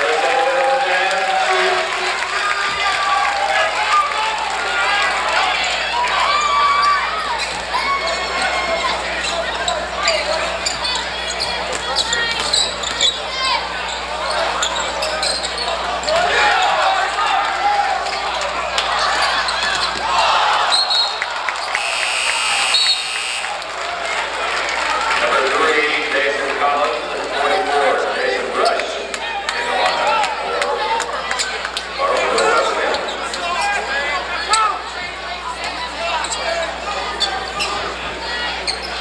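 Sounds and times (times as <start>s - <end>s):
crowd and players talking: 0.0s - 39.0s.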